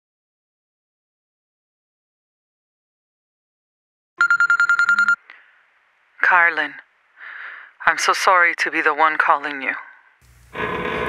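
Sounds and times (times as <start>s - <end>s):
telephone ringing electronic trill: 4.2s - 5.2s.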